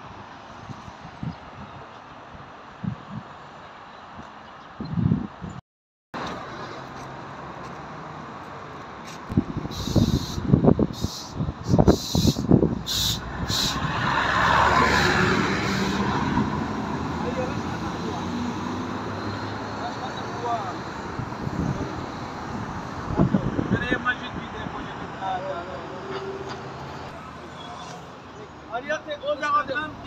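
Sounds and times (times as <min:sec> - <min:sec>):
traffic noise: 0:00.0 - 0:05.6, 0:06.2 - 0:30.0
car passing: 0:12.9 - 0:28.2.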